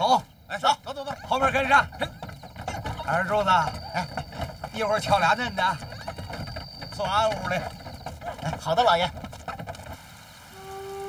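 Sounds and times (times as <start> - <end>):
shuffling footsteps: 0.0 - 10.0
rustling of people walking: 0.0 - 11.0
soft flute note: 10.5 - 11.0.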